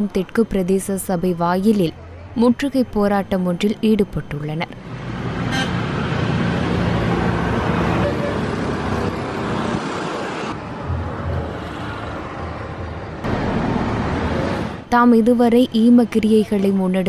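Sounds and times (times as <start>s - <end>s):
motor vehicle running: 4.7s - 14.9s.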